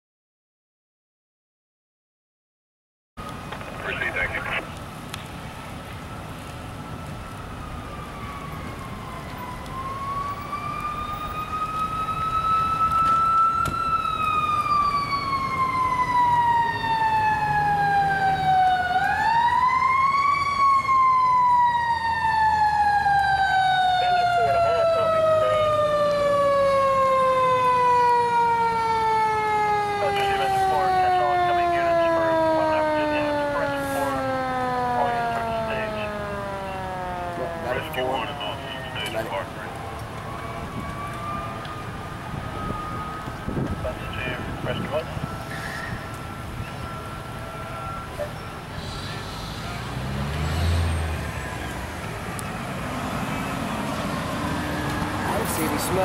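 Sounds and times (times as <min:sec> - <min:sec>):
fire siren winding: 0:07.0 - 0:39.2, 0:39.8 - 0:43.8.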